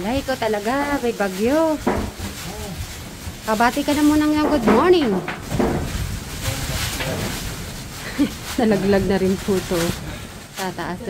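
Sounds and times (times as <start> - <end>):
heavy rain: 0.0 - 11.0
wind rumbling on microphone: 0.0 - 11.0.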